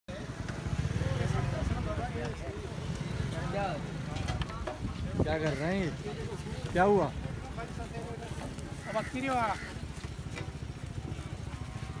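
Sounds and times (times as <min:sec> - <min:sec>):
men talking: 0:00.2 - 0:10.2.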